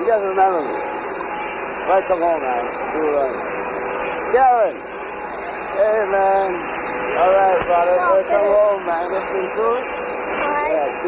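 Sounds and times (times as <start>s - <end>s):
people talking: 0.0s - 0.8s, 1.9s - 3.4s, 4.3s - 4.8s, 5.7s - 6.6s, 7.2s - 11.0s
steady background noise: 0.0s - 11.0s.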